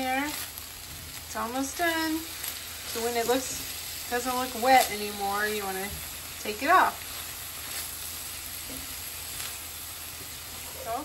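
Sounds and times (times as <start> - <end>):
meat and eggs sizzling in skillet: 0.0 - 11.0.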